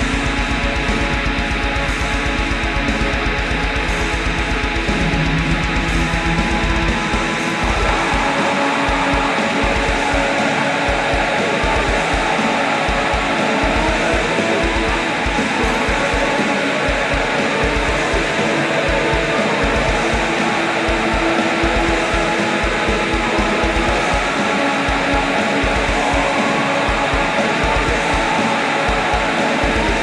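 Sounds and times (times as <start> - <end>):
distorted guitars: 0.0 - 30.0
fast pounding kick drums: 0.0 - 30.0
person singing: 0.0 - 30.0.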